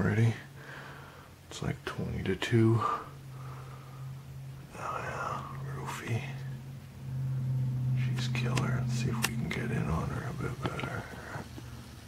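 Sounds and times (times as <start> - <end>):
low electrical hum: 0.0 - 12.0
sharp clicks: 8.4 - 9.6.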